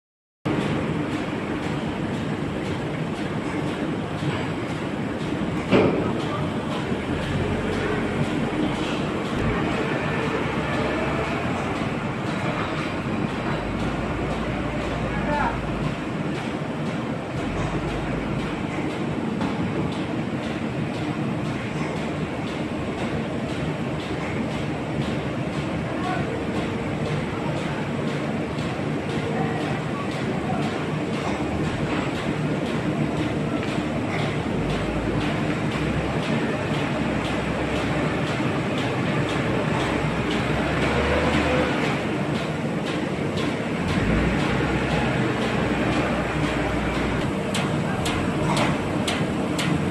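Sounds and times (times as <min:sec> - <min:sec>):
paper sheeter mechanical clatter: 0:00.5 - 0:49.9.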